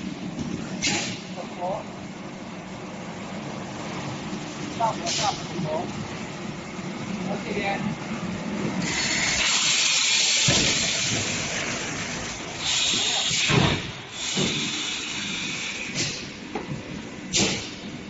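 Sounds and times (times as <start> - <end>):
compressed air hissing: 8.8 - 11.4, 12.6 - 16.3.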